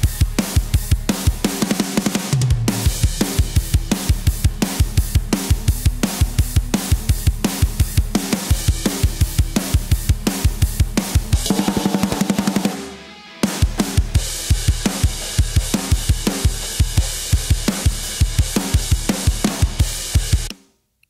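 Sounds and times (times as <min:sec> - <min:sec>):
snare drum: 0:10.4 - 0:12.9, 0:13.6 - 0:20.7
cymbals: 0:11.4 - 0:13.0.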